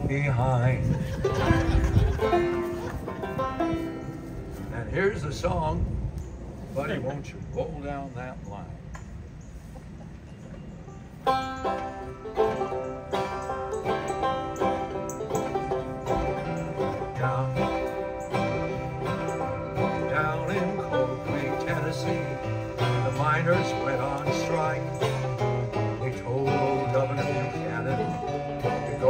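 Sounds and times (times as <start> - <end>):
acoustic guitar: 0.0 - 5.0, 11.3 - 29.0
banjo: 0.0 - 5.3, 11.1 - 29.0.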